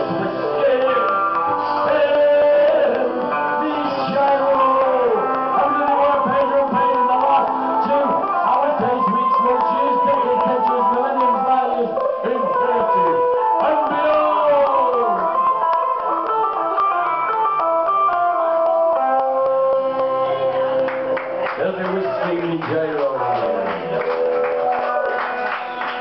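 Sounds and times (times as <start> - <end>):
voices over music: 0.0 - 16.2
folk band with guitars: 0.0 - 26.0.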